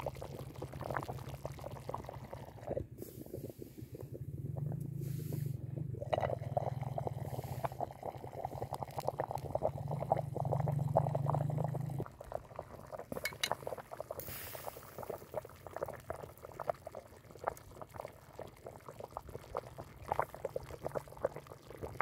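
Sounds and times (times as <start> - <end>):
broth boiling with popping bubbles: 0.0 - 22.0.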